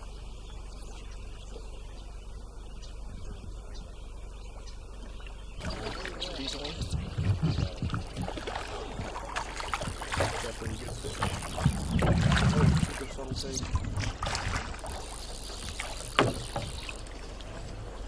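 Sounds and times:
water sloshing around boat: 0:04.5 - 0:18.0
oars and gear knocking: 0:05.2 - 0:18.0.

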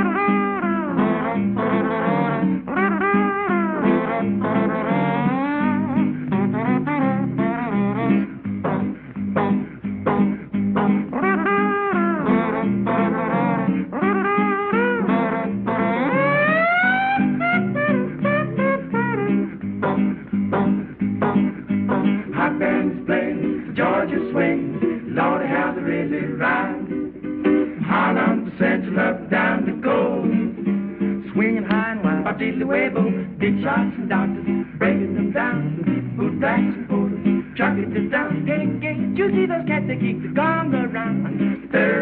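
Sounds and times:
strummed guitar: 0:00.0 - 0:42.0
male vocal quartet singing: 0:22.2 - 0:27.0, 0:27.8 - 0:30.6, 0:31.2 - 0:42.0.

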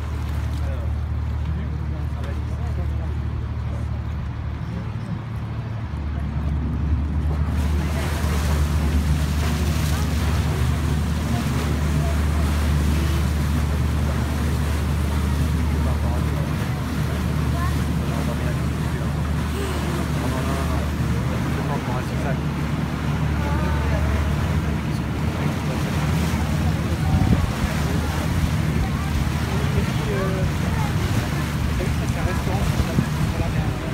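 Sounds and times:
boat engine droning: 0:00.0 - 0:33.9
faint passenger voices: 0:00.0 - 0:33.9
water washing past hull: 0:00.0 - 0:33.9
wind on microphone: 0:26.7 - 0:33.9.

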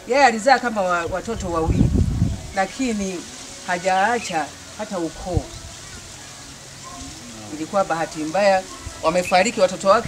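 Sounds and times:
woman speaking: 0:00.0 - 0:01.8, 0:02.6 - 0:05.5, 0:07.5 - 0:10.0
background hiss: 0:00.0 - 0:10.0.

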